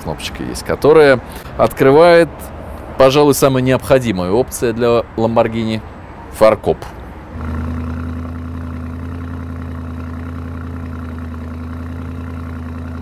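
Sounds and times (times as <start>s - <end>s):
vehicle engine running steadily: 0.0s - 13.0s.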